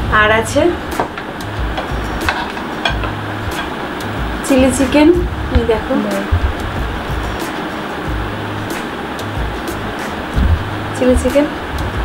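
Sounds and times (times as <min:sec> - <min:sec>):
room hiss: 0:00.0 - 0:12.0
glass plate clacking on table: 0:01.0 - 0:03.8
plates clicking and knocking: 0:01.0 - 0:03.8.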